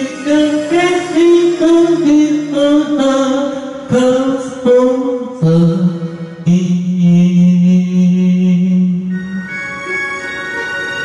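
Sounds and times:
man singing through microphone: 0.0s - 9.6s
karaoke backing track: 0.0s - 11.0s.

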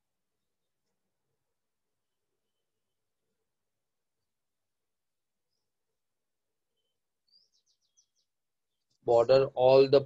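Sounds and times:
faint bird chirp: 0.2s - 4.6s, 5.3s - 9.1s.

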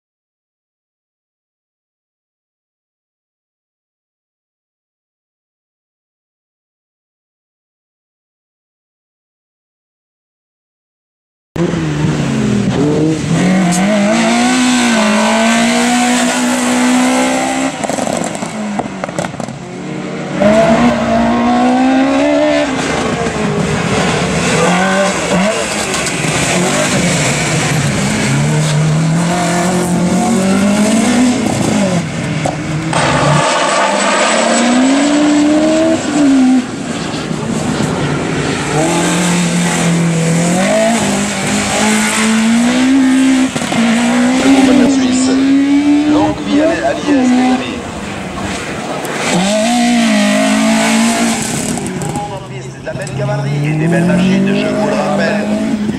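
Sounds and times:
car engine revving hard: 11.6s - 55.9s.

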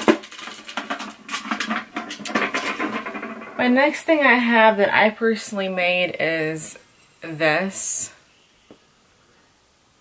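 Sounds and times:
box clicks and clatters: 0.0s - 3.6s
rustling: 0.0s - 3.6s.

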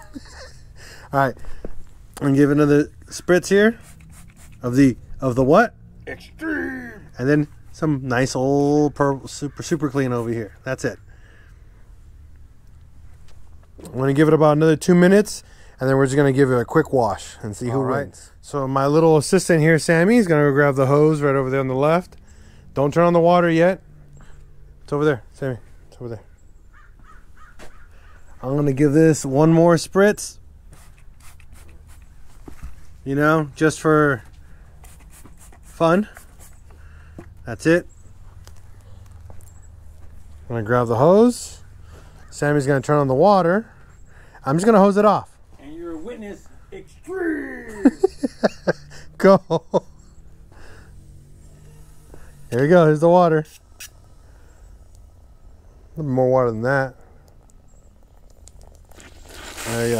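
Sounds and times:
spray bottle squirts: 3.8s - 4.7s, 30.7s - 32.2s, 58.8s - 59.9s.

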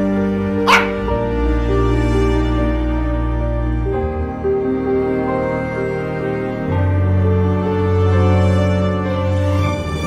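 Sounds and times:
dog bark: 0.6s - 1.2s.

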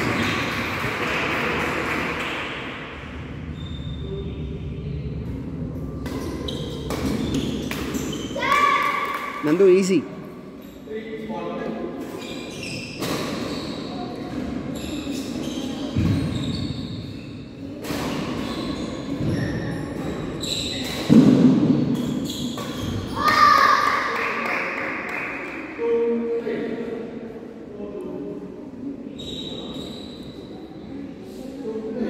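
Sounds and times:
voices echoing in hall: 0.0s - 32.0s.

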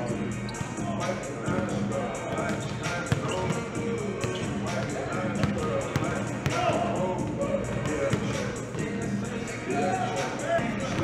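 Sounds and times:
people talking: 0.6s - 11.0s
basketballs bouncing on court floor: 1.5s - 9.0s.

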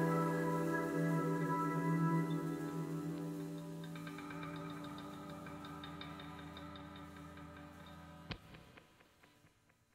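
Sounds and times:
soft music with ticking beat: 0.0s - 9.9s.

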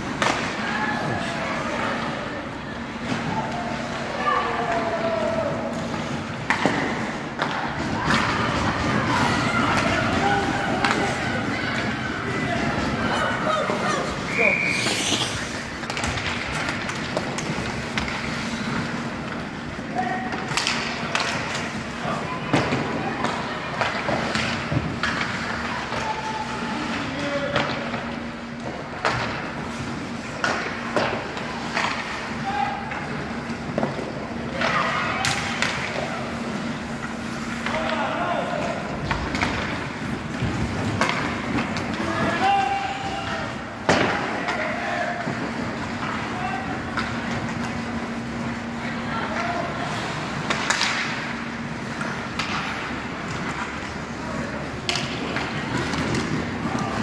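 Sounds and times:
hockey sticks and puck clacking: 0.0s - 2.2s, 3.0s - 57.0s
players calling out: 0.3s - 19.2s
skates scraping on ice: 4.9s - 21.8s.

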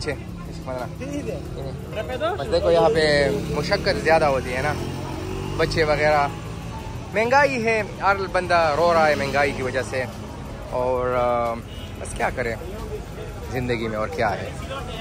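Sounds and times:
people's voices: 0.0s - 15.0s
road traffic hum: 0.0s - 15.0s.

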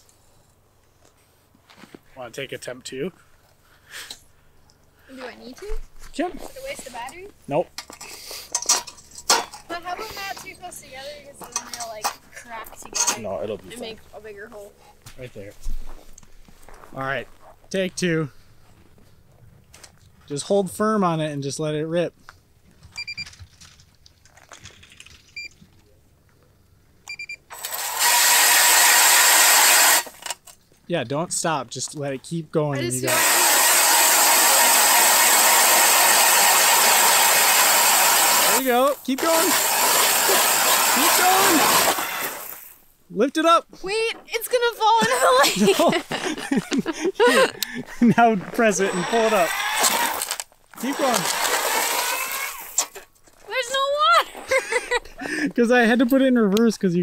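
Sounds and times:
ice auger drilling into ice: 27.5s - 30.2s, 33.0s - 42.8s, 48.6s - 53.9s.

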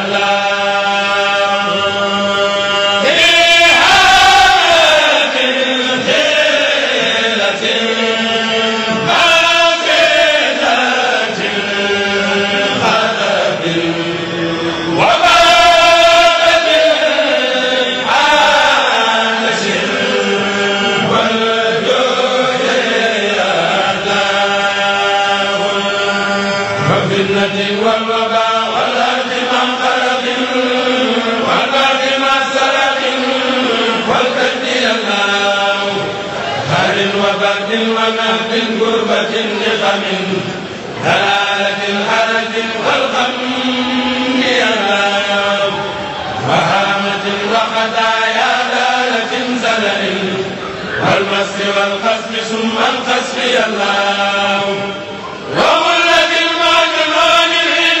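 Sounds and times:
men chanting through microphones: 0.0s - 58.0s.

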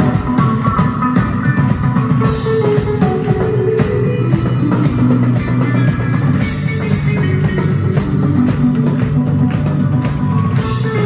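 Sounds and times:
rock band playing instrumental: 0.0s - 11.0s.

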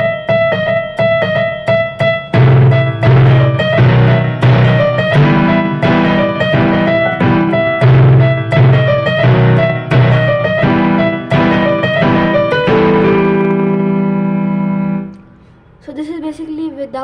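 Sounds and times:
electronic keyboard piano melody: 0.0s - 15.6s.

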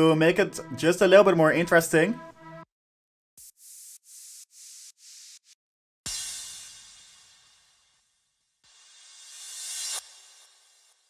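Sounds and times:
reversed crash cymbal: 4.1s - 11.0s.

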